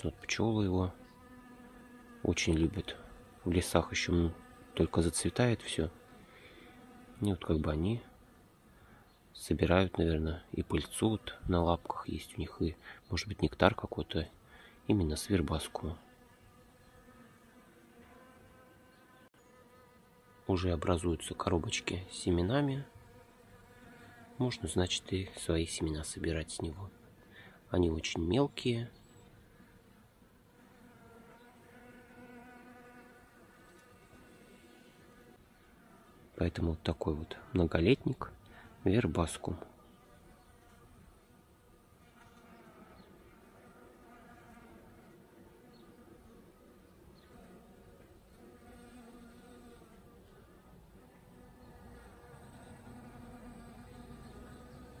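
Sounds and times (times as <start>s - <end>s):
bee buzzing in flight: 0.2s - 8.4s, 15.6s - 20.6s, 22.2s - 25.0s, 29.6s - 36.3s, 39.8s - 55.0s.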